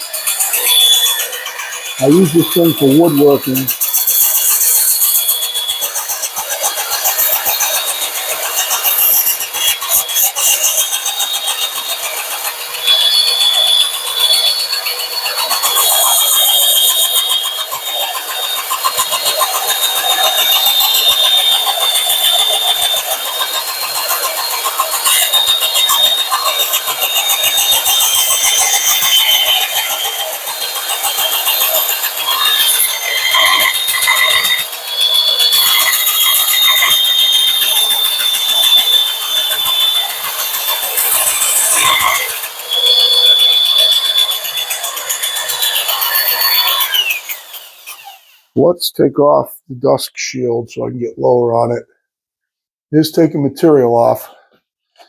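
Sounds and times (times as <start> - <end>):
sanding drum grinding metal: 0.0 - 48.6.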